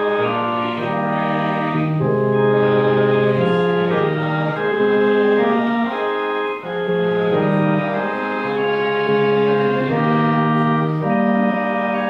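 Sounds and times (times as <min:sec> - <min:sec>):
organ playing hymn chords: 0:00.0 - 0:12.0.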